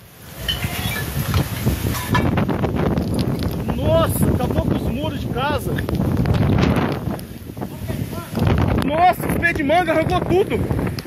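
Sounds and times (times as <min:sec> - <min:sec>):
wind buffeting microphone: 0:00.0 - 0:11.0
voice: 0:03.6 - 0:05.8, 0:07.6 - 0:10.6.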